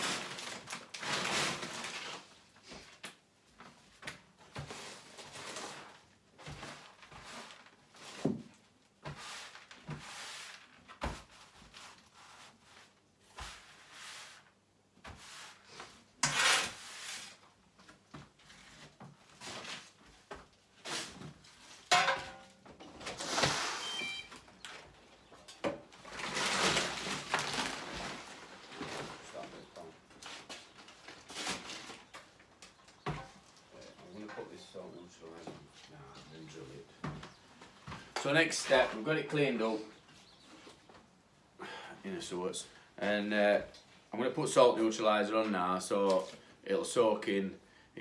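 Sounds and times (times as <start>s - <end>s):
broom sweeping concrete floor: 4.6s - 17.6s, 18.4s - 21.9s, 23.1s - 24.2s.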